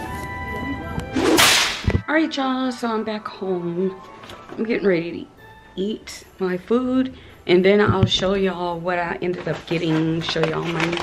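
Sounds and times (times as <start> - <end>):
quiet background music: 0.0 - 11.0
low thump: 7.9 - 8.4.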